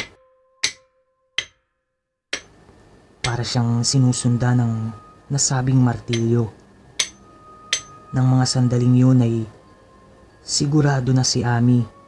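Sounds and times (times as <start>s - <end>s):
sharp hammer knocks: 0.0s - 1.6s, 2.3s - 2.6s, 6.1s - 6.4s, 7.0s - 8.0s
faint steady tone: 2.4s - 12.0s.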